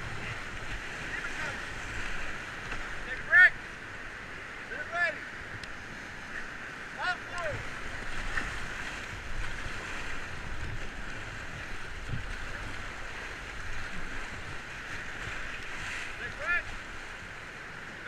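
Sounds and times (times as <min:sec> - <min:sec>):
whitewater rapids rushing: 0:00.0 - 0:18.0.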